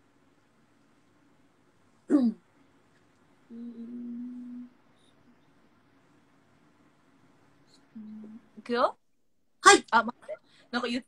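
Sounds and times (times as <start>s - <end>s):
woman humming: 3.5s - 4.8s, 7.9s - 8.6s.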